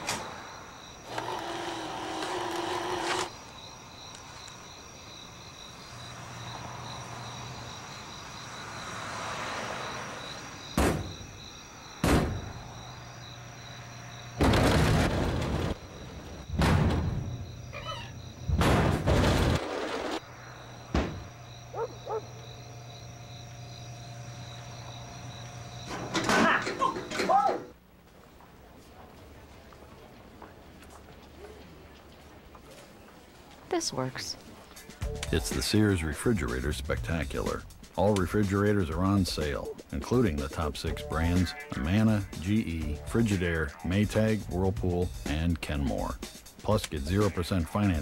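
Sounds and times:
crickets chirping: 0.0 - 48.0
vending machine motor humming: 1.0 - 3.3
vending machine banging: 14.4 - 15.8, 18.5 - 20.2.

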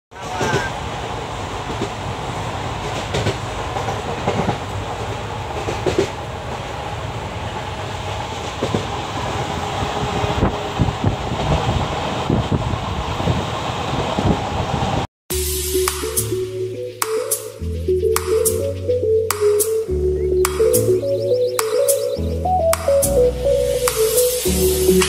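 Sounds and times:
train rumble: 0.1 - 15.8
train clacks and knocks: 0.2 - 14.4.

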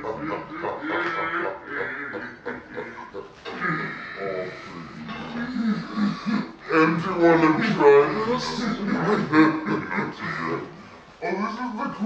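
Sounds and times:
woman laughing hard: 0.0 - 3.3.

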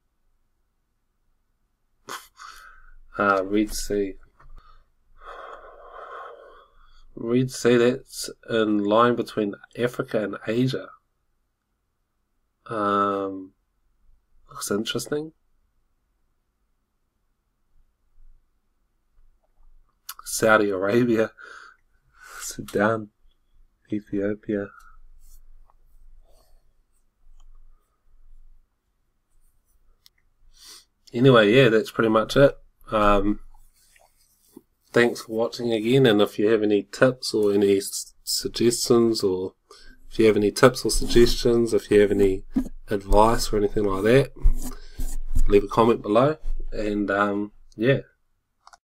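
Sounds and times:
breath close to microphone: 2.1 - 3.1, 4.5 - 7.2, 21.4 - 22.4, 39.6 - 40.1, 44.4 - 45.3
computer mouse rubbing and ticking: 39.9 - 46.9.

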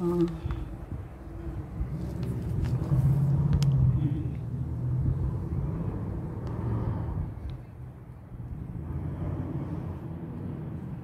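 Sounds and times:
motor vehicle passing: 0.0 - 11.0.

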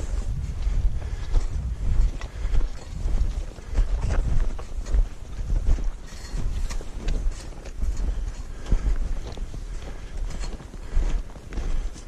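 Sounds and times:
footsteps in snow: 0.0 - 12.0
wind buffeting microphone: 0.0 - 12.0.

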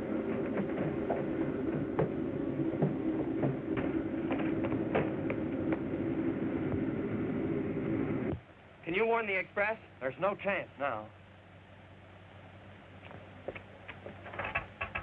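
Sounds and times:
sharp clicks and knocks of rails: 13.5 - 15.0.

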